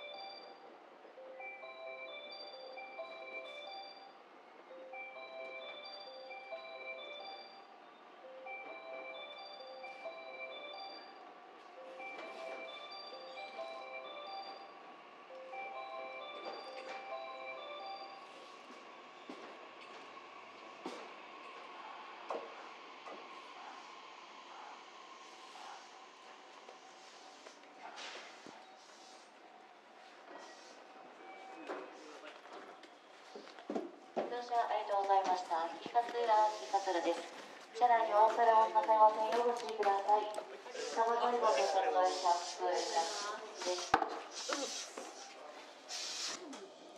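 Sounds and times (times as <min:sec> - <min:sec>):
bell-like chime melody: 0:00.0 - 0:00.6, 0:01.2 - 0:11.2, 0:11.8 - 0:18.5
electric train whine: 0:00.0 - 0:27.8.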